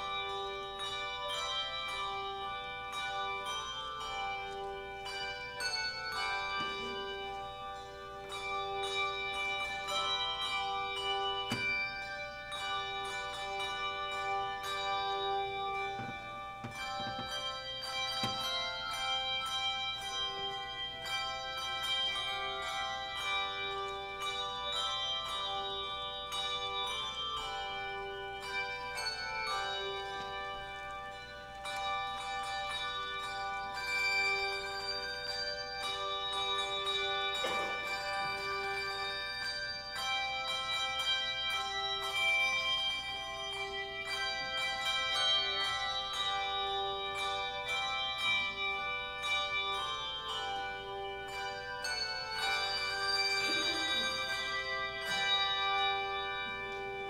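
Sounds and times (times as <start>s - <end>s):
handbells playing: 0.0s - 57.0s.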